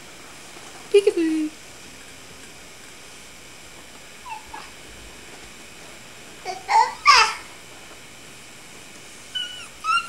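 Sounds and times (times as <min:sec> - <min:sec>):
steady background hiss: 0:00.0 - 0:10.0
baby squealing: 0:04.3 - 0:04.7, 0:09.4 - 0:10.0.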